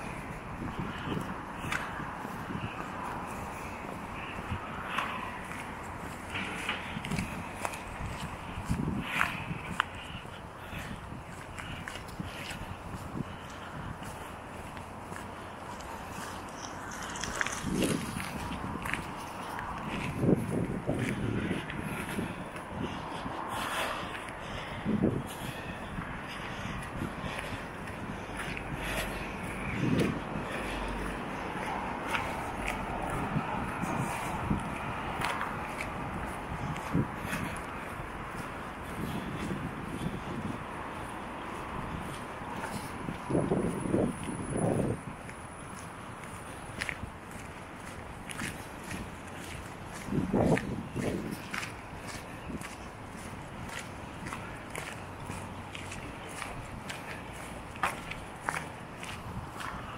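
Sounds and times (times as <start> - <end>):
footsteps on wet asphalt: 0.0 - 59.9
outdoor background noise: 0.0 - 59.9.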